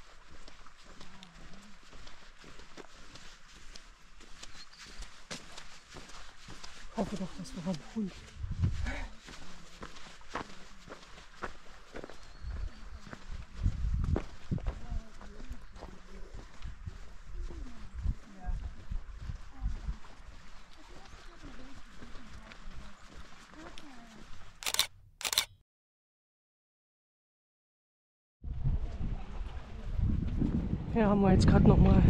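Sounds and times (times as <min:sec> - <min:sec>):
faint talk of hikers: 0:00.0 - 0:25.5, 0:28.5 - 0:32.0
footsteps on sand and mud: 0:00.0 - 0:25.5
camera shutter click: 0:24.6 - 0:25.6.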